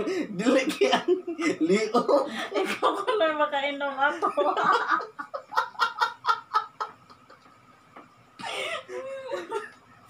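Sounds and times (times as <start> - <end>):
two people laughing: 4.2 - 10.0.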